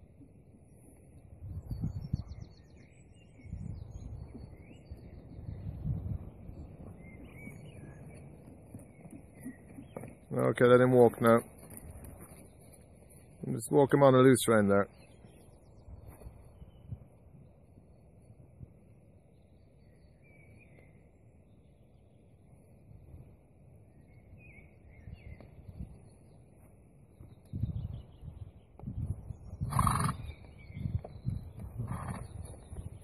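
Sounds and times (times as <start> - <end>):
wind buffeting microphone: 1.2 - 10.2, 15.6 - 17.6, 24.1 - 26.2, 27.1 - 33.0
horse snorting: 29.6 - 30.3, 31.8 - 32.4.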